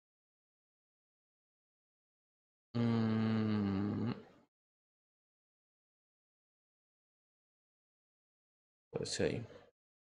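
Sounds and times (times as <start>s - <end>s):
man humming: 2.8s - 4.4s.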